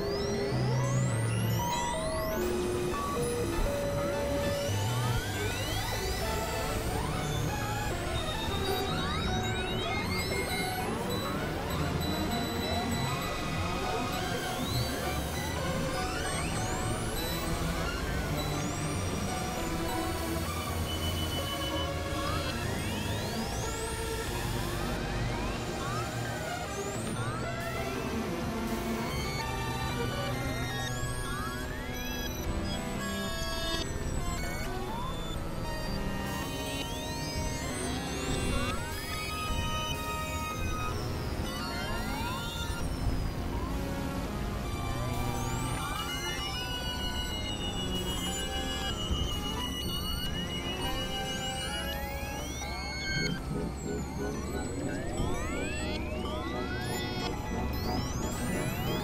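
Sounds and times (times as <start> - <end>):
dissonant synthesizer tones: 0.0 - 59.0.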